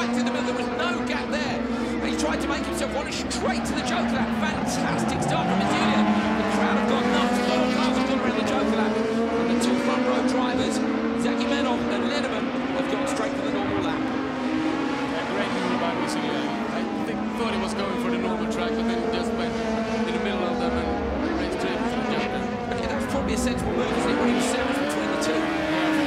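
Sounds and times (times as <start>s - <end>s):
racing car engines at full throttle: 0.0s - 26.0s.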